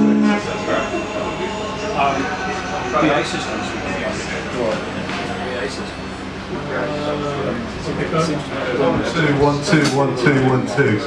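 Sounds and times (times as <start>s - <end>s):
strummed guitar chord: 0.0s - 8.8s
indistinct chatter: 0.0s - 11.0s
room noise: 0.0s - 11.0s.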